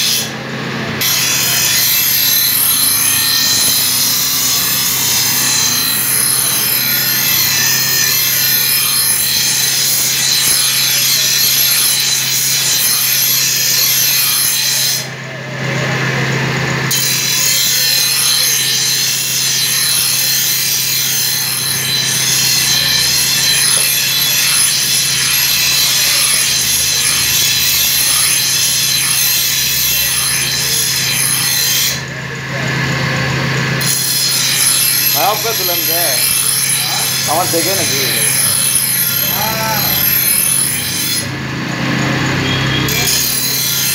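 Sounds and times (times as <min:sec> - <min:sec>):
knife grinding on wheel: 0:00.0 - 0:15.2, 0:16.1 - 0:43.9
grinding machine hum: 0:00.0 - 0:43.9.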